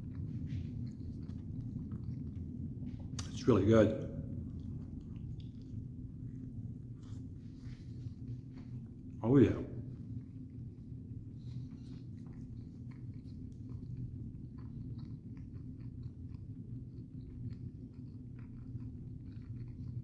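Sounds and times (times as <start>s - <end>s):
man chewing: 0.0s - 3.4s, 4.3s - 9.2s, 9.9s - 20.0s
low background hum: 0.0s - 20.0s.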